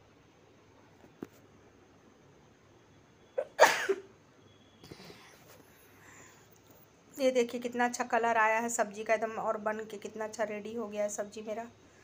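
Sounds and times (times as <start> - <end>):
person sneezing: 3.4 - 4.1.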